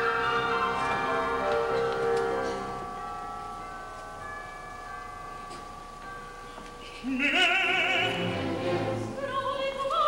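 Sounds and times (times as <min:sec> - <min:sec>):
orchestra sustained chord: 0:00.0 - 0:04.0.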